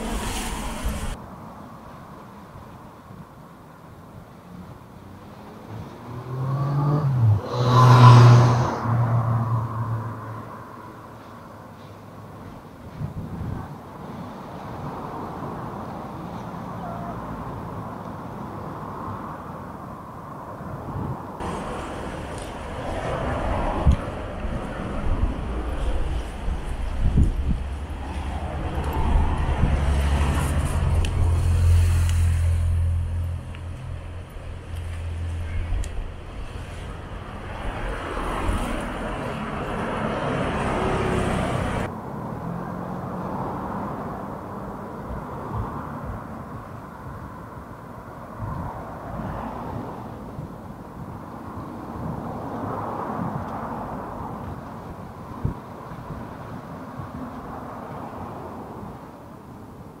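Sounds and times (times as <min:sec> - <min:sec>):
road traffic passing: 0:00.0 - 1:00.0
faint voices: 0:34.6 - 0:37.9.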